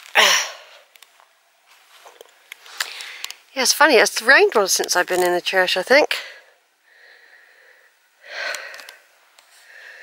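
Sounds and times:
person breathing: 2.7 - 3.3, 6.2 - 10.0.

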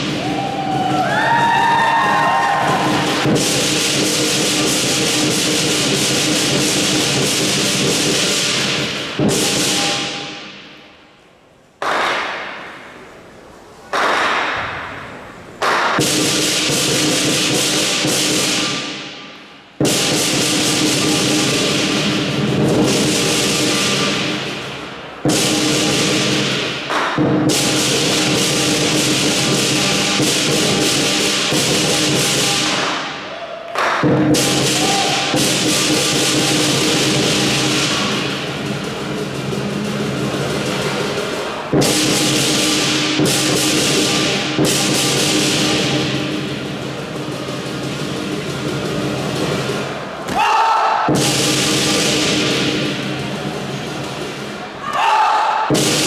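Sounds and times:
lion drum beating: 0.0 - 10.6, 19.8 - 33.2, 33.9 - 49.9
gong and cymbals crashing: 2.4 - 11.0, 15.9 - 33.3, 34.0 - 50.0, 51.1 - 54.7, 55.7 - 56.0.

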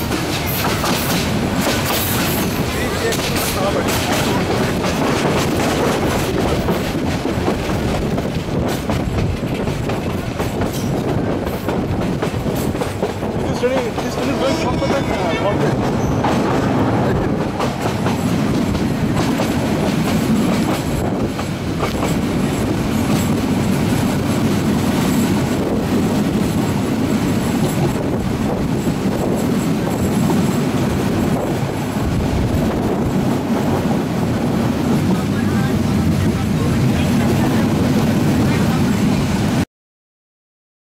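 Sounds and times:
train wheel clacks: 0.0 - 33.8
train wheels rumbling on rail: 0.0 - 39.6.

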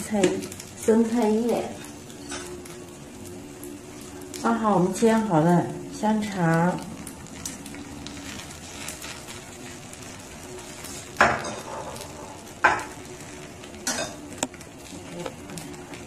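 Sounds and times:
crepe sizzling on a pan: 0.0 - 16.0
kitchenware clattering: 11.2 - 12.0.

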